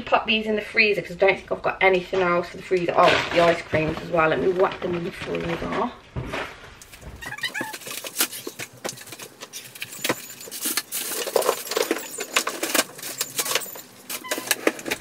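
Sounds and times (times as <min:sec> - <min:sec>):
plastic packaging rustling: 0:03.0 - 0:15.0.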